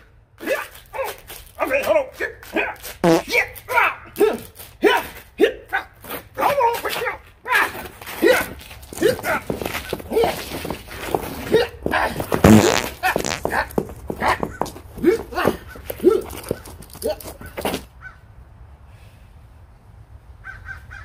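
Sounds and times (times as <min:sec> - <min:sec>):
shoes scuffing on concrete: 0:12.1 - 0:17.8.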